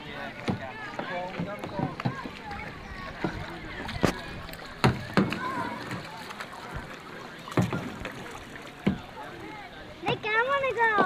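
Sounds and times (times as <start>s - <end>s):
water slapping boat hull: 0.0s - 11.0s
water wash: 0.0s - 11.0s
wind: 0.0s - 11.0s.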